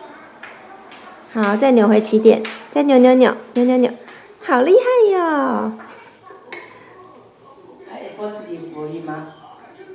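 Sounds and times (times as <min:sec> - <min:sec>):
faint voices: 0:00.0 - 0:09.9.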